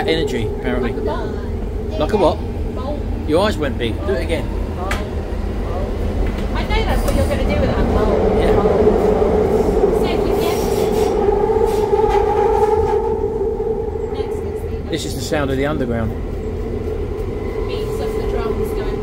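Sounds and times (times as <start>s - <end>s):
higher whine: 0.0s - 19.0s
train rumble: 0.0s - 19.0s
train whine: 0.0s - 19.0s.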